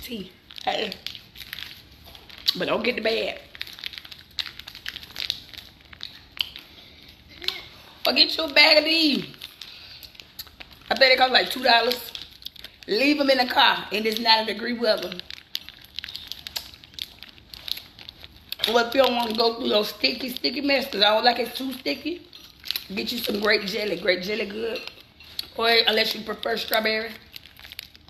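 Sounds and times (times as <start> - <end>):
plastic bag crinkling: 0.0 - 28.0.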